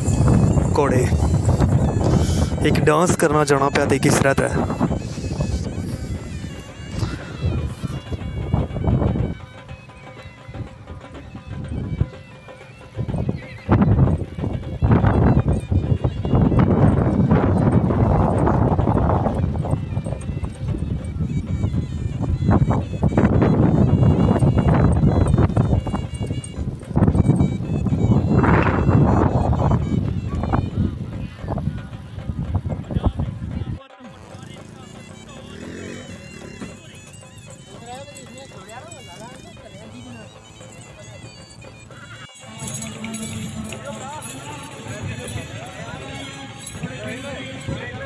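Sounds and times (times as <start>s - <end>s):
faint music: 0.0s - 48.0s
voices: 0.0s - 48.0s
horse hooves trotting on dirt: 7.6s - 29.6s.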